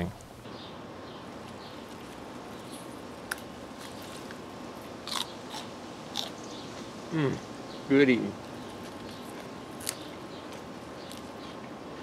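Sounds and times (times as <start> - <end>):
steady background hiss: 0.0 - 12.0
pea pods being bitten and chewed: 1.8 - 4.4, 5.0 - 6.4, 8.7 - 12.0.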